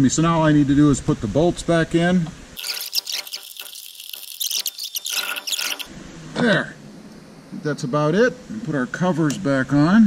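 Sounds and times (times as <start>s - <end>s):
scratchy rubbing: 2.6s - 5.9s.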